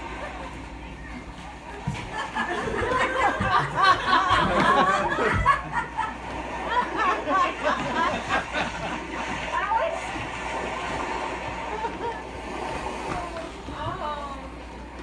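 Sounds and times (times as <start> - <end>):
room background noise: 0.0 - 15.0.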